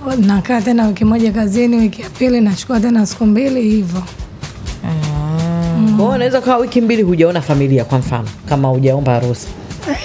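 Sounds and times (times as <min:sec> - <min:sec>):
people talking: 0:00.0 - 0:04.1, 0:04.9 - 0:10.0
faint music beat: 0:00.0 - 0:10.0
person holding a low drawn-out sound: 0:04.8 - 0:06.0.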